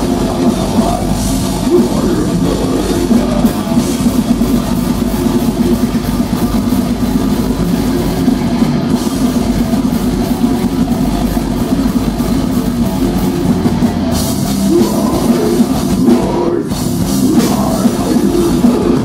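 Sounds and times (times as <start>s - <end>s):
distorted electric guitars: 0.0s - 19.0s
fast drum kit beat: 0.0s - 19.0s.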